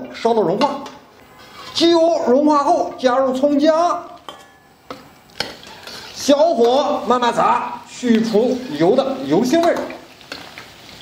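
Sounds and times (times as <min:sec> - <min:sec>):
faint frying sizzle: 0:00.5 - 0:11.0.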